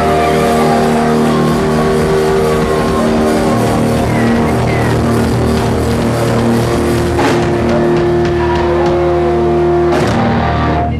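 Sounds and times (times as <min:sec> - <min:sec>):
loud cymbal crash: 0:00.0 - 0:08.4
drums: 0:00.0 - 0:10.9
electric guitars: 0:00.0 - 0:10.9.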